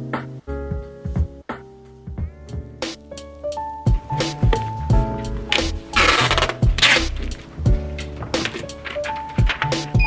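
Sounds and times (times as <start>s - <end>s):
background music with steady beat: 0.0s - 10.0s
packing tape tearing off roll: 5.5s - 10.0s.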